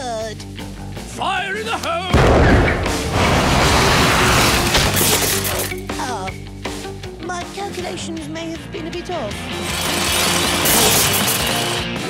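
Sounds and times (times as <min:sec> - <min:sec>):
background music: 0:00.0 - 0:12.0
crash with breaking sound: 0:02.2 - 0:05.7.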